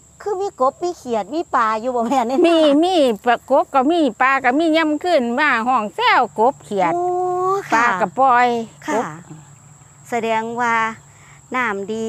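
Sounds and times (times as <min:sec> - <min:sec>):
crickets chirping: 0:00.0 - 0:12.0
woman speaking: 0:00.2 - 0:09.5, 0:10.1 - 0:12.0.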